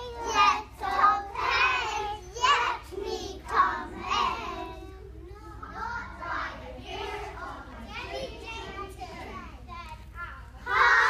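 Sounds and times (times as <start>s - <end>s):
young children singing: 0.0s - 9.5s, 10.2s - 11.0s.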